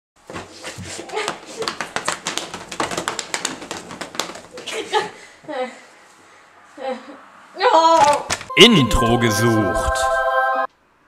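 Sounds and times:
hand claps and slaps: 0:01.2 - 0:04.8.

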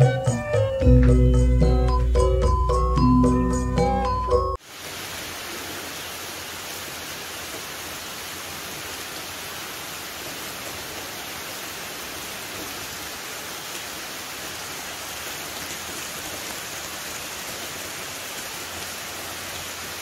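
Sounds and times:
rain falling on foliage: 0:04.6 - 0:20.0.

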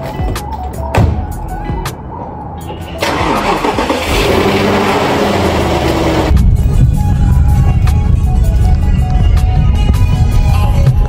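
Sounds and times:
car engine starting and revving: 0:03.0 - 0:06.4
music with heavy bass beat: 0:05.3 - 0:11.0.

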